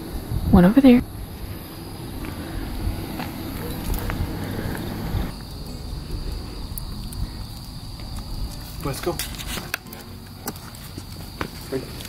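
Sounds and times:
low rumble: 0.0s - 8.7s
insects trilling: 0.0s - 12.0s.

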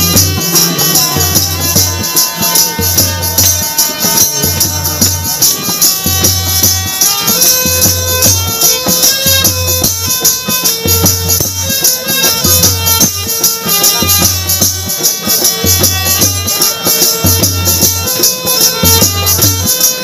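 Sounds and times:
jingling percussion: 0.0s - 20.0s
plucked string melody: 0.0s - 20.0s.

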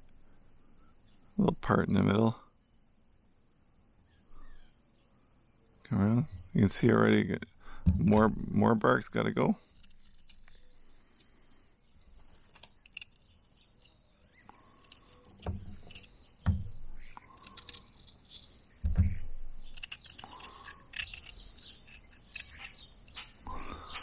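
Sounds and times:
knife scraping bark off stick: 9.6s - 10.9s, 12.1s - 14.0s, 14.6s - 24.0s
dull knocks of handling: 15.4s - 17.2s, 18.8s - 19.5s.

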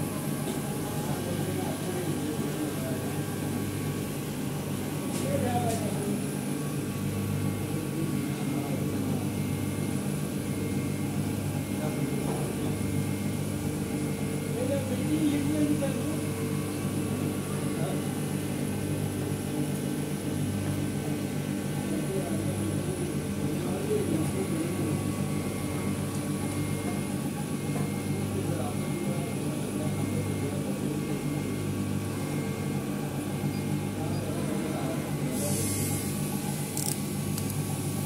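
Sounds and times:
engraving machine humming: 0.0s - 38.0s.

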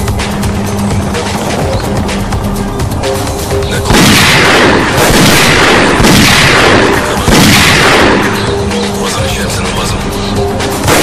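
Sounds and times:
loud gunfire volley: 3.9s - 8.6s.

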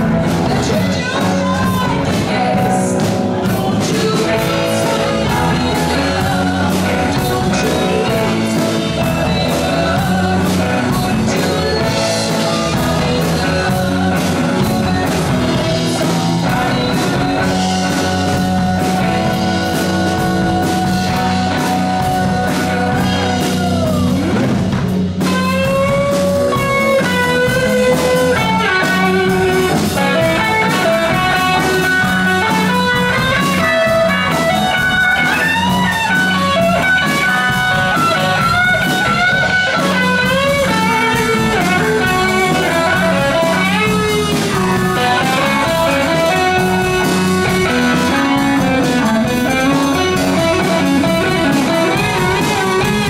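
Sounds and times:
electric guitar lead bending notes: 0.0s - 53.0s
live rock band playing: 0.0s - 53.0s.

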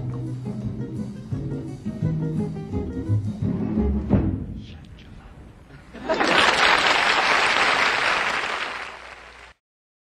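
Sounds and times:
studio audience applauding: 6.0s - 9.6s.

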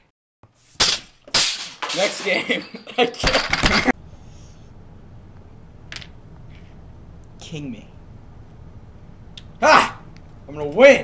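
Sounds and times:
game pieces clattering: 1.6s - 3.9s.

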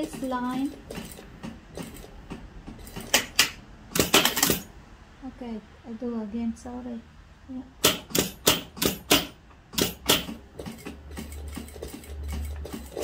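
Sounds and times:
sewing machine clacking: 0.0s - 4.7s, 7.8s - 13.0s.

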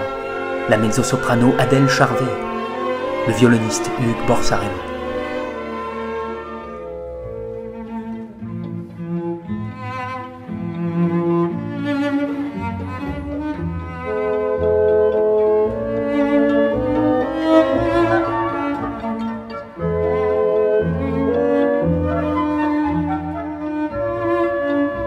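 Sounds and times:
flute: 0.0s - 7.8s, 14.5s - 25.0s
bowed strings: 0.0s - 25.0s
clarinet: 0.0s - 25.0s
solo cello melody: 0.0s - 25.0s.

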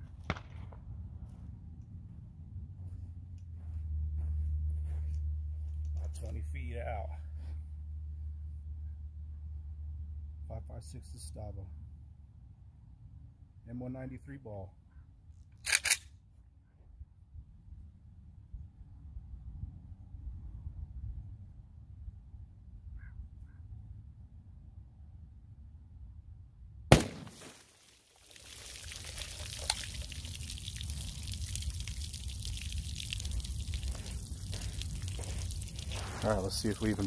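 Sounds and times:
pistol gunshot: 26.9s - 27.6s
water pouring and trickling: 27.4s - 37.0s.

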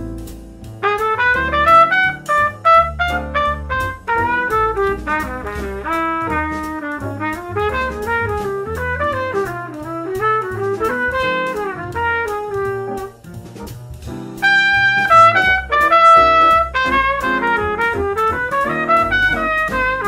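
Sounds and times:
bass backing: 0.0s - 20.0s
jazz trumpet solo: 0.0s - 20.0s.

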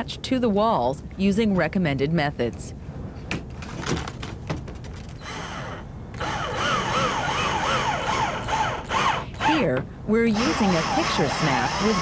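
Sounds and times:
cordless drill motor whining: 5.2s - 9.6s, 10.3s - 12.0s.

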